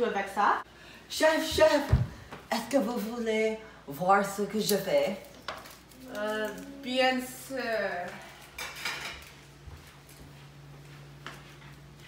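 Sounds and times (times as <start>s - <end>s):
dishes and cutlery clattering: 8.6s - 9.4s.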